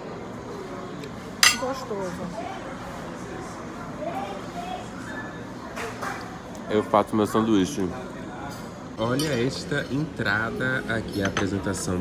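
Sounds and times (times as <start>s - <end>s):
fork clinking on ceramic dish: 1.4s - 1.8s.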